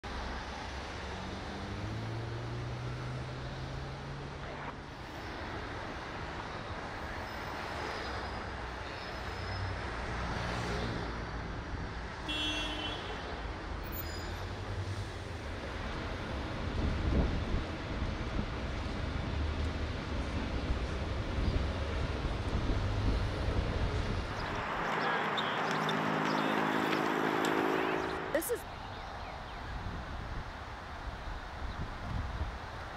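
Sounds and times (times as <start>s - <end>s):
passing cars and buses: 0.0s - 32.9s
loud vehicle passing: 22.7s - 28.8s
engine drone: 23.9s - 28.6s
high-pitched squeal: 24.3s - 28.6s.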